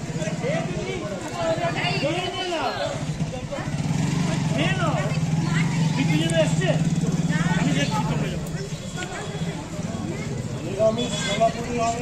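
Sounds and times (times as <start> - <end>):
people talking: 0.2 - 12.0.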